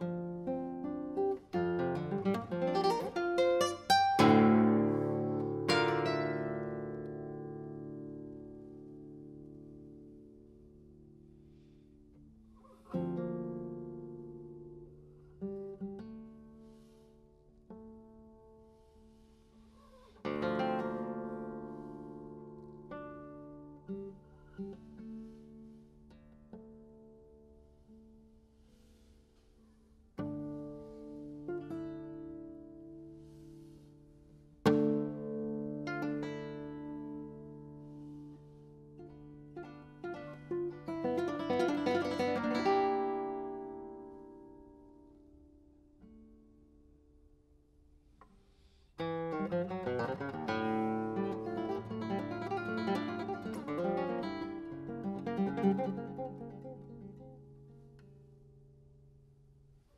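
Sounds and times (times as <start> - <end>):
classical guitar playing: 0.0 - 47.4, 48.1 - 59.9.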